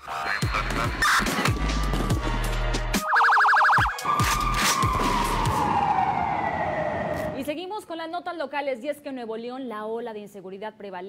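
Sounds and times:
electronic siren: 0:03.0 - 0:07.4.

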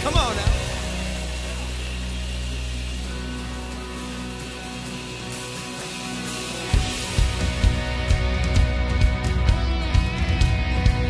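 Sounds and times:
band holding sustained chord: 0:00.0 - 0:08.9.

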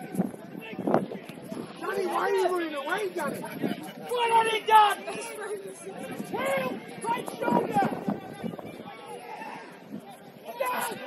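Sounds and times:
faint background chatter: 0:00.0 - 0:11.0
players shouting: 0:01.6 - 0:11.0.

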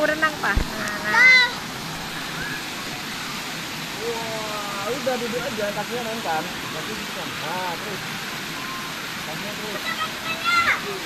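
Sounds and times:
swimming pool water splashing: 0:00.0 - 0:11.0.

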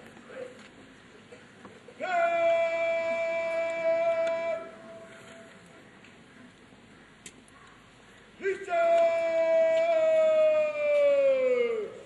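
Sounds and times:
man shouting a command: 0:02.0 - 0:05.0, 0:08.4 - 0:12.0.

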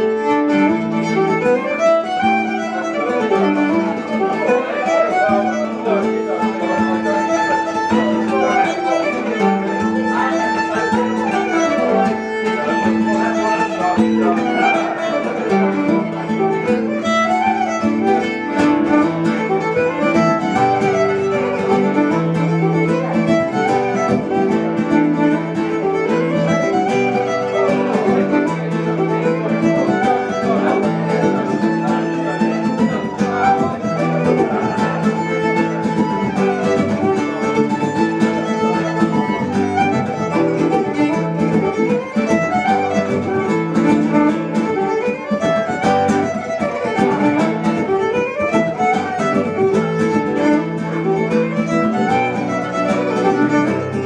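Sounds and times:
acoustic guitar strumming chords: 0:00.0 - 0:54.0
fiddle melody: 0:00.0 - 0:54.0.

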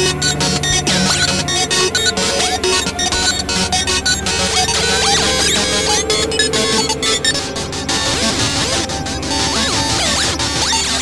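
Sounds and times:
clashing electronic music: 0:00.0 - 0:11.0
steady held tone: 0:00.0 - 0:11.0
sweeping pitch glides: 0:00.0 - 0:11.0.

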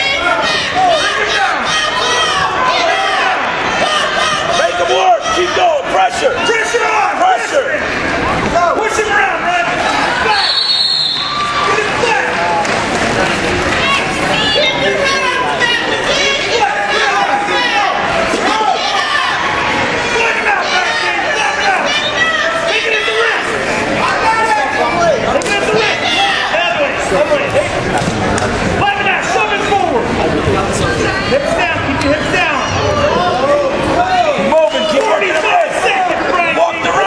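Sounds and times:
people shouting over one another: 0:00.0 - 0:07.8, 0:13.8 - 0:27.4
people calling out echoing: 0:00.0 - 0:37.0.

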